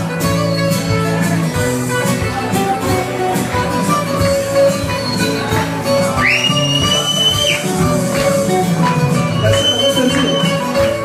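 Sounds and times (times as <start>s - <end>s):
bouzouki folk music: 0.0s - 11.0s
loud whistle: 6.2s - 7.8s, 9.4s - 10.7s.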